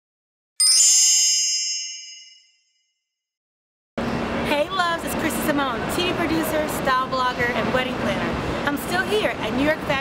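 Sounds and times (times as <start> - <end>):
high-pitched chime ringing: 0.6 - 3.1.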